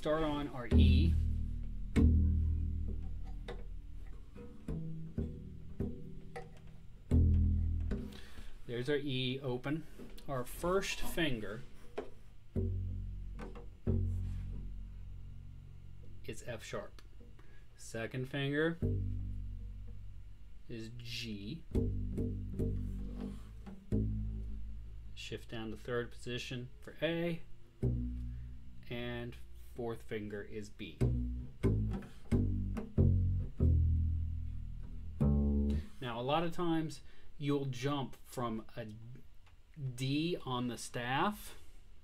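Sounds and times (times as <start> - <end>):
double bass plucked low notes: 0.0 - 9.6, 10.2 - 17.4, 18.2 - 36.9.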